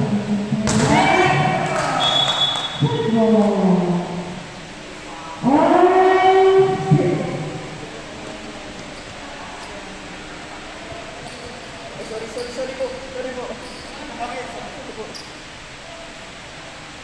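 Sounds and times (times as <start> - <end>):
players shouting in indoor hall: 0.7 - 3.1.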